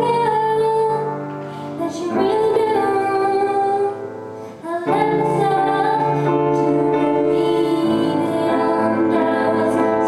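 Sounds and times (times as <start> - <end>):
upright piano: 0.0 - 10.0
woman singing slow song: 0.0 - 10.0.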